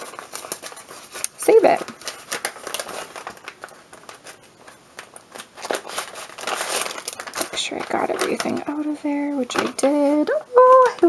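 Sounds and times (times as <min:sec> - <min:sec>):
paper packaging crinkling: 0:00.0 - 0:11.0.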